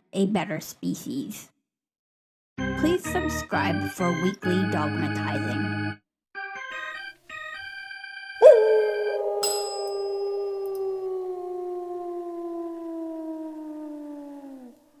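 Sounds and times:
dog howling: 8.4s - 15.0s
desk call bell ringing: 9.0s - 10.3s.

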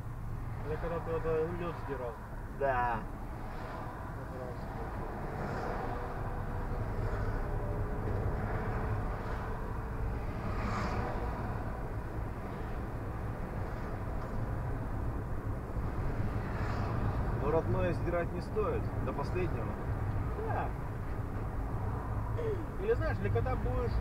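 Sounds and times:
car engine and tyre noise: 0.0s - 24.0s.

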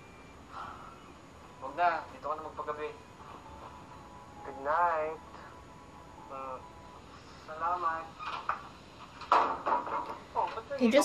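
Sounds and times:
tv drama dialogue: 0.0s - 11.0s.

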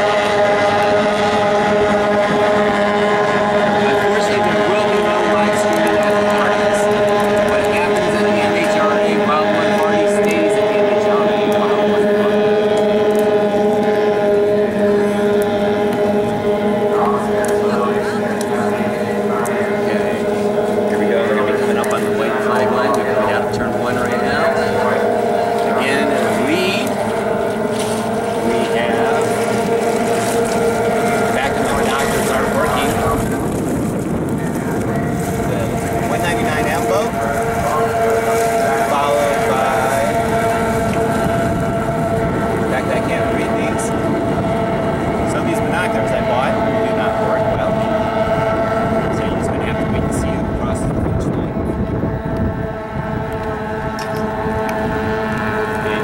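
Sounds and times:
racing outboard boats droning: 0.0s - 56.0s.

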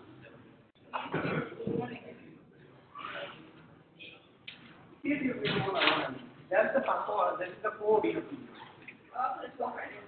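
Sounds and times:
person coughing: 0.9s - 1.6s.

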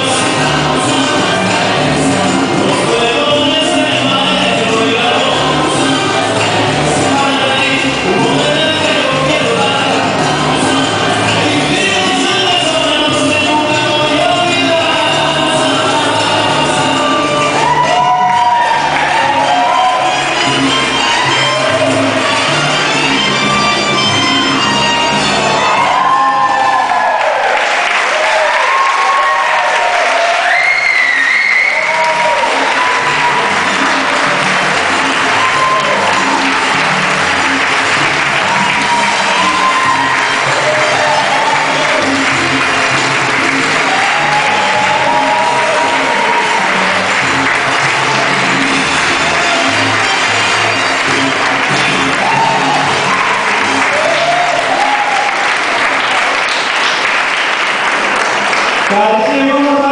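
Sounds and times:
crowd applauding and cheering: 0.0s - 59.9s
salsa music: 0.0s - 59.9s.

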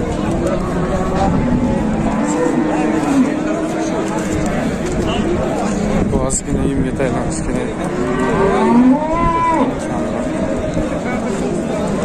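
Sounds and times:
cow mooing: 0.9s - 3.8s, 7.8s - 9.8s.

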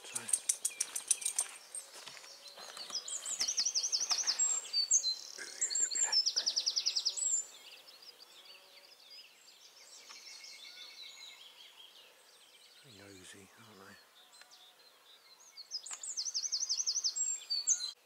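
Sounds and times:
faint birdsong: 0.0s - 18.0s
songbird singing loudly: 0.0s - 18.0s.

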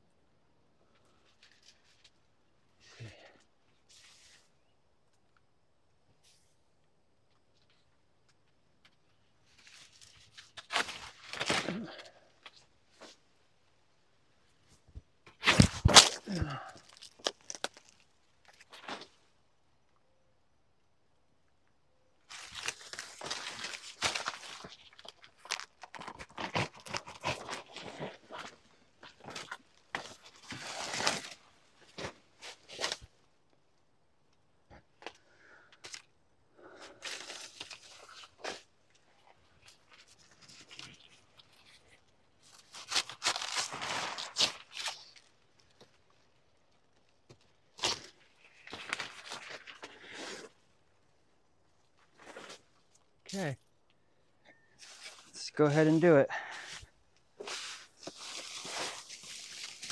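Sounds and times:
leaves tearing and rustling: 9.7s - 12.3s, 15.4s - 18.0s, 22.3s - 31.4s, 39.7s - 45.3s, 47.7s - 50.6s, 57.4s - 59.9s.

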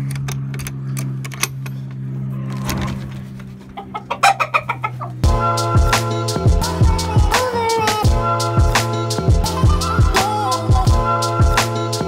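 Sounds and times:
chickens clucking: 2.9s - 5.3s.

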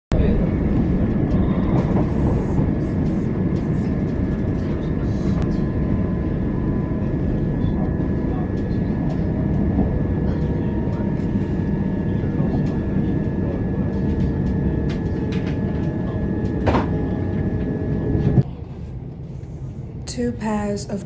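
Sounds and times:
train rumble inside carriage: 0.1s - 21.0s.

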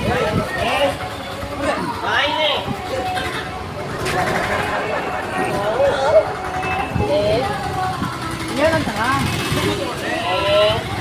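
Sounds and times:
people talking: 0.0s - 11.0s
street traffic noise: 0.0s - 11.0s.

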